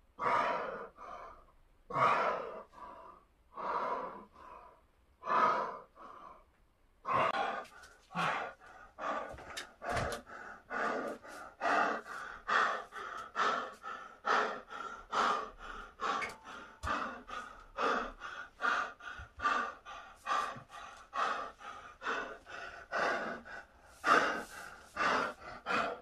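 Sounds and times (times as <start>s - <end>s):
man breathing hard: 0.1s - 26.0s
man gasping: 7.0s - 26.0s.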